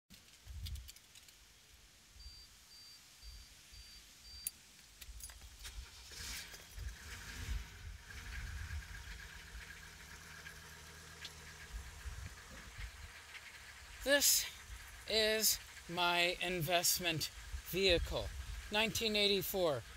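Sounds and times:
faint beeping: 2.2s - 4.5s
diesel engine cranking and idling: 5.2s - 19.9s.

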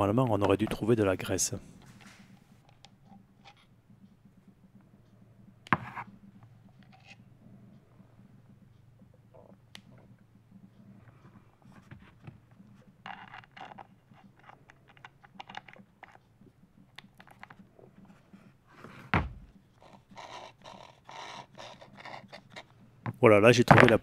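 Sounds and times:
metal and plastic parts clicking: 13.0s - 16.3s, 16.9s - 17.6s.

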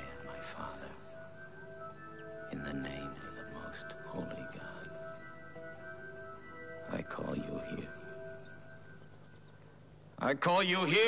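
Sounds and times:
held electronic tones: 0.0s - 9.9s
low steady hum: 0.0s - 11.0s.

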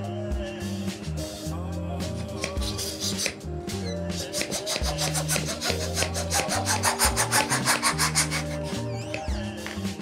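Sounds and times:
background music with bass notes: 0.0s - 10.0s
balloon rubbing: 2.4s - 9.5s.

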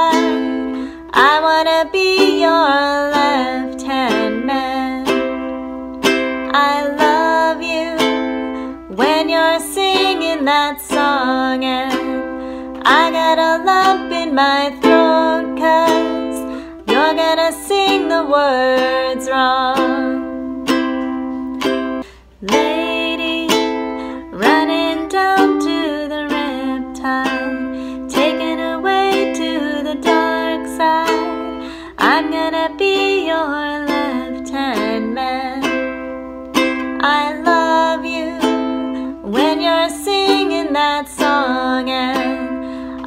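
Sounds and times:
woman singing: 0.0s - 20.8s, 22.4s - 43.0s
ukulele strumming: 0.0s - 43.0s.

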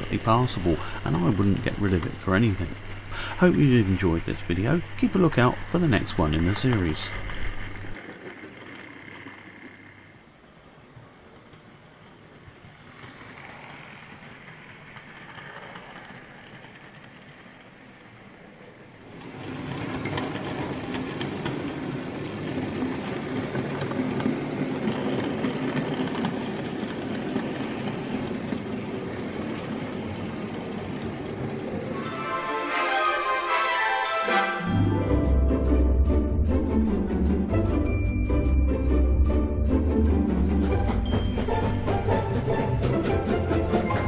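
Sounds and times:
model train rumbling on track: 0.0s - 34.1s, 34.7s - 44.0s.

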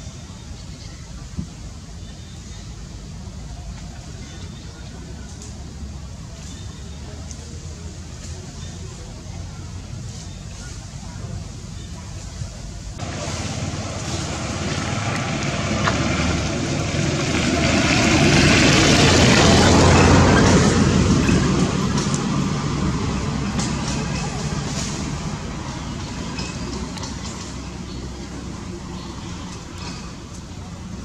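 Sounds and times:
motor vehicle passing: 13.0s - 31.0s.

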